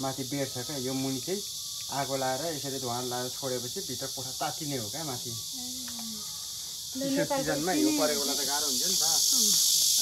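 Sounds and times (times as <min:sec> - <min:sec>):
high-pitched insect buzzing: 0:00.0 - 0:10.0
person talking: 0:07.0 - 0:08.4.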